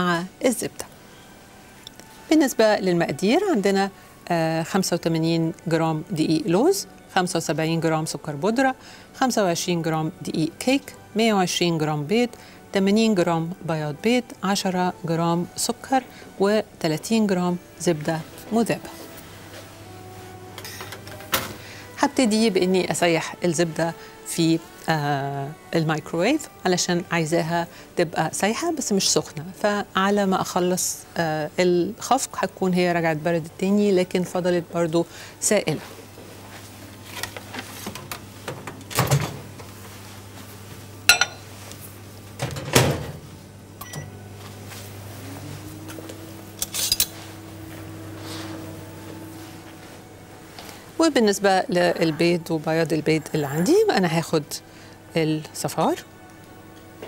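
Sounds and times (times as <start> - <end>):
low steady hum: 0.0 - 57.0
microwave oven humming: 36.0 - 57.0.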